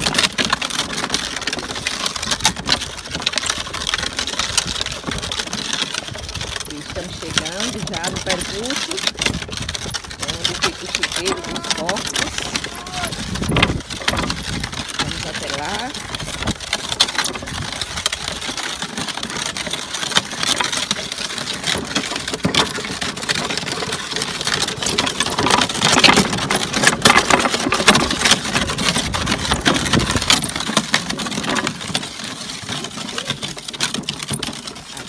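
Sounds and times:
wooden cart wheels rattling: 0:00.0 - 0:35.0.

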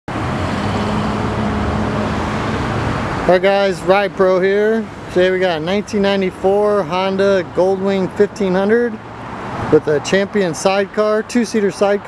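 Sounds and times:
vehicle rumble: 0:00.1 - 0:12.0.

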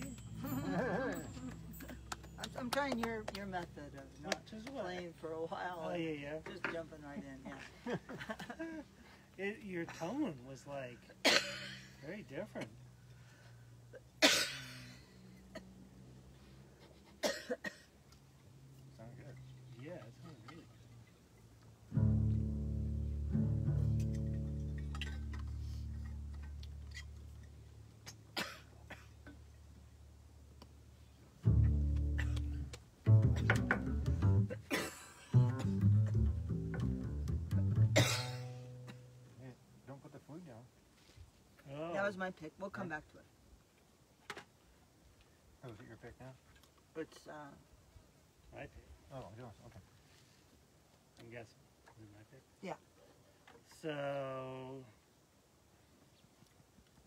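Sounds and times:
sharp coughs: 0:11.2 - 0:11.9, 0:14.2 - 0:15.7, 0:17.2 - 0:17.9, 0:28.3 - 0:29.4, 0:32.2 - 0:32.6, 0:34.5 - 0:35.2, 0:38.0 - 0:39.1
plucked double bass notes: 0:21.9 - 0:27.5, 0:31.4 - 0:34.7, 0:35.3 - 0:39.4.

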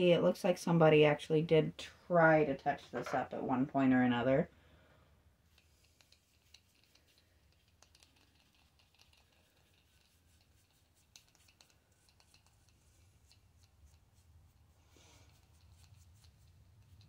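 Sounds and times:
paintbrush scratching on concrete: 0:05.5 - 0:17.0.

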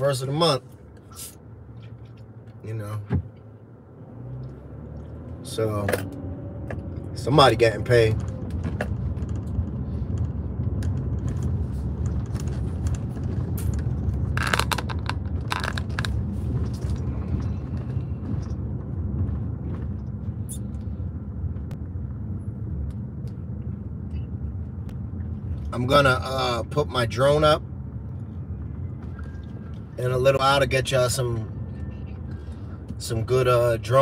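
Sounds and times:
car engine and tyres rumbling: 0:00.0 - 0:34.0.

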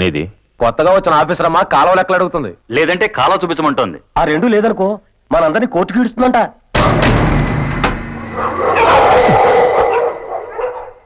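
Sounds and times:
comic music cue: 0:06.8 - 0:10.9.

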